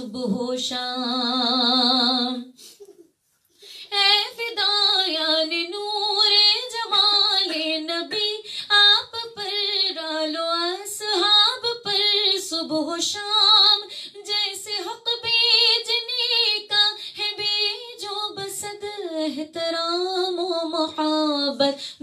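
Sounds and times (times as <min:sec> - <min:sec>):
woman singing unaccompanied: 0:00.0 - 0:02.5, 0:03.9 - 0:22.0.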